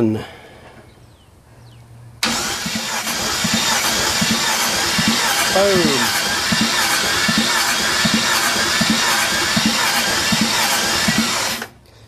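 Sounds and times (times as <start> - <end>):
truck engine starting and running: 2.2 - 12.0.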